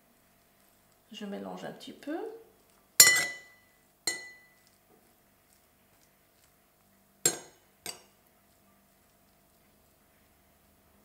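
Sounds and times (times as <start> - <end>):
metal spoon clinking ceramic bowl: 3.0 - 4.7, 7.3 - 8.1.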